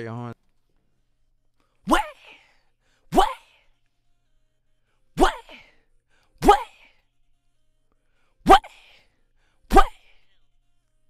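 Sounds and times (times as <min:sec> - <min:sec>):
rapper shouting: 0:01.9 - 0:02.4, 0:03.1 - 0:03.6, 0:05.2 - 0:05.7, 0:06.4 - 0:06.9, 0:08.4 - 0:09.0, 0:09.7 - 0:10.3.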